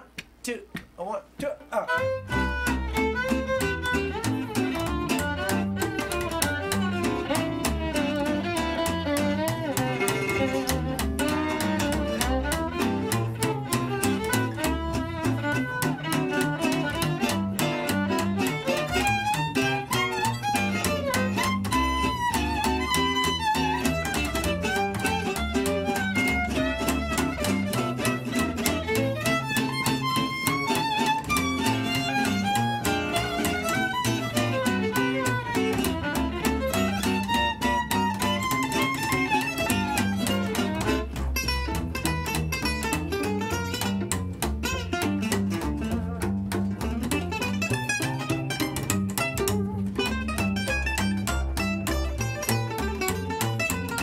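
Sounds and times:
acoustic guitar strumming: 1.4s - 54.0s
plucked double bass: 1.4s - 54.0s
violin melody: 1.8s - 54.0s.

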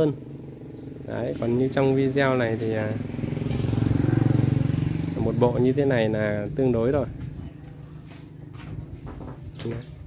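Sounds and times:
engine running: 0.0s - 8.6s.

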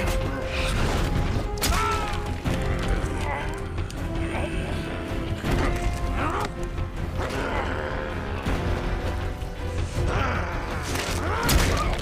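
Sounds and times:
dramatic film score: 0.0s - 12.0s.

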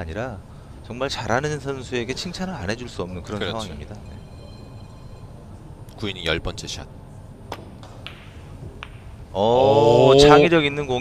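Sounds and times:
billiard balls clicking: 7.5s - 9.3s
cue striking ball: 7.5s - 9.4s.

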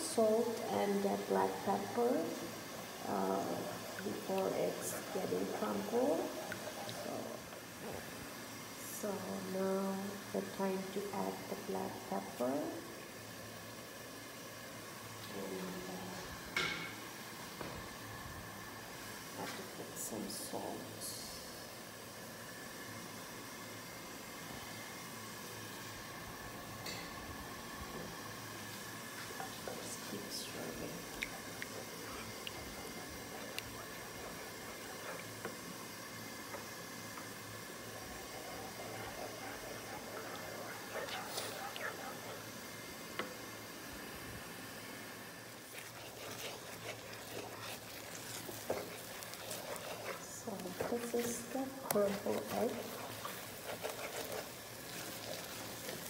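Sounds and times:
eggs sizzling in oil: 0.0s - 56.0s.

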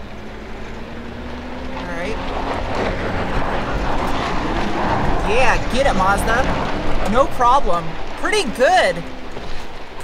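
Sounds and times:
car engine working under load: 0.0s - 10.0s.

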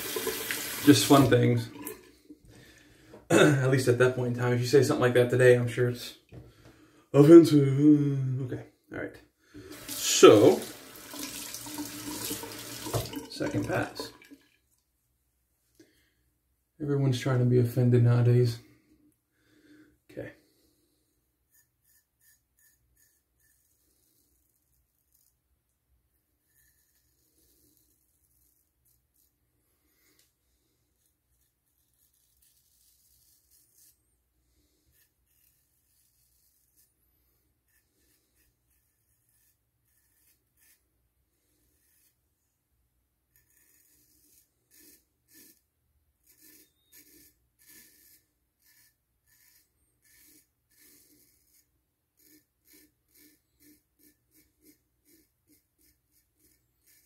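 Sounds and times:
razor scraping stubble: 21.5s - 25.4s, 26.4s - 30.2s, 30.9s - 42.2s, 43.3s - 57.0s.

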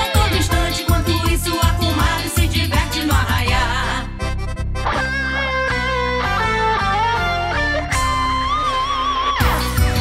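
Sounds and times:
steady bass backing: 0.0s - 10.0s
guitar lead melody: 4.4s - 10.0s.

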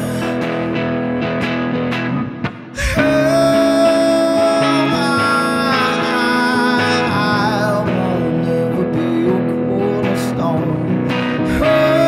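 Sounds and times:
strummed electric guitar: 0.0s - 12.0s
man singing: 2.7s - 12.0s.

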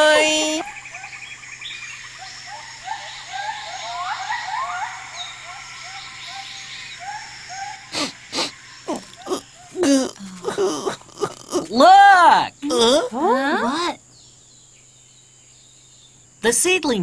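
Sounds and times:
faint steady hum: 0.0s - 17.0s
short rising animal calls: 2.5s - 9.8s.

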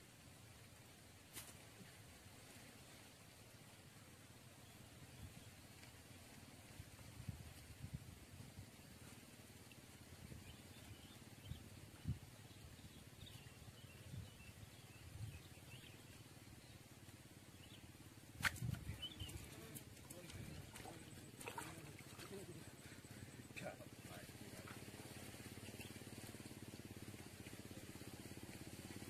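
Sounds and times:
bird chirps: 18.7s - 22.4s.

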